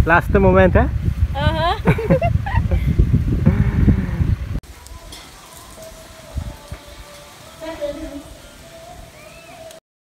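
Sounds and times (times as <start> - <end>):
wind rumbling on microphone: 0.0 - 8.4
faint voices: 4.6 - 9.8.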